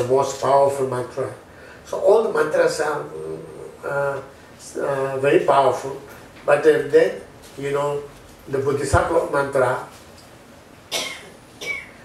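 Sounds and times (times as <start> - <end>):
man coughing: 10.9 - 12.0.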